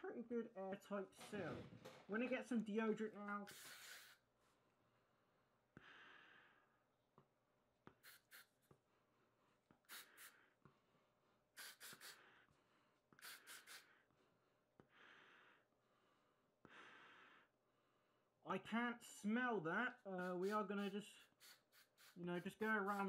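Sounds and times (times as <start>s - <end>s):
breathing through gas mask: 3.5s - 4.2s, 9.9s - 10.6s, 11.6s - 12.5s, 13.2s - 14.1s
short sharp hisses: 3.5s - 4.2s, 7.9s - 8.6s, 9.8s - 10.5s, 11.6s - 12.4s, 13.2s - 14.0s, 21.2s - 22.2s.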